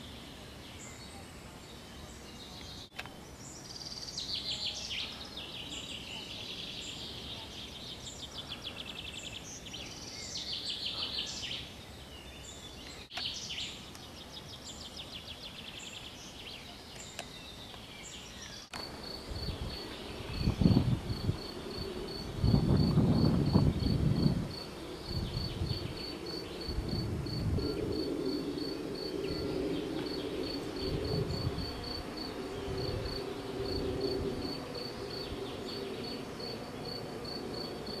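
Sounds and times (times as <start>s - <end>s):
cricket chirping: 18.2s - 38.0s
low rumbling noise: 18.8s - 38.0s.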